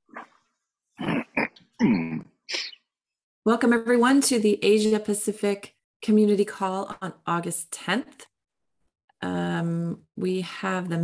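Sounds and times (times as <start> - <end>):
person clearing throat: 1.0 - 2.7.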